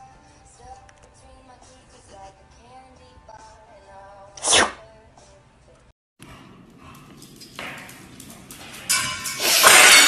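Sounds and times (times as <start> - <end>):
cat sneezing: 4.4 - 4.8.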